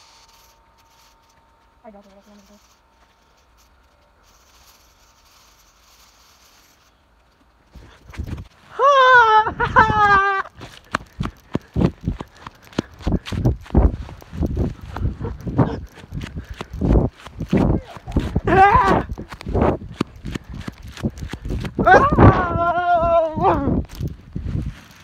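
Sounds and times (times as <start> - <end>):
person screaming: 8.7 - 10.5, 17.8 - 19.2, 21.8 - 23.8
running footsteps on grass: 9.5 - 25.0.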